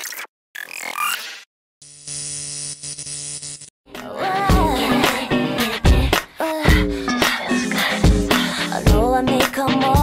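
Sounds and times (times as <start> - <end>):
electric buzz and static hum: 1.8 - 3.7.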